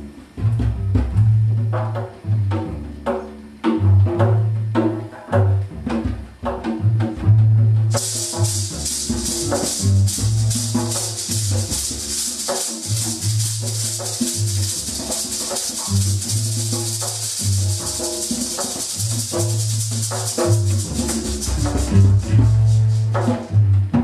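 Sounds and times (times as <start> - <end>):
low bass figure: 0.0 - 24.0
shaker rattling: 7.9 - 23.6.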